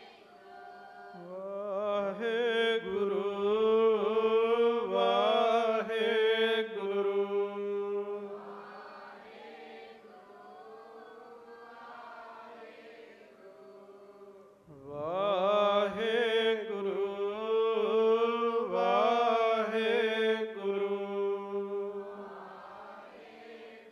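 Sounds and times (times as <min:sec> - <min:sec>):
man chanting: 0:01.2 - 0:08.4, 0:14.1 - 0:22.2
group voices chanting: 0:08.4 - 0:14.3.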